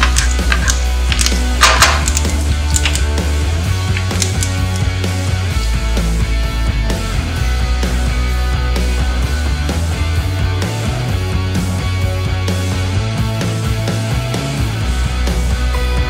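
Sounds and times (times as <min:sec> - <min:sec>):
background music with strong bass: 0:00.0 - 0:16.0.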